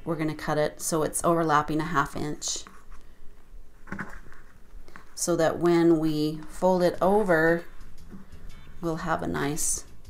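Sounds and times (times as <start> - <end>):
fabric rustling: 2.5 - 8.5.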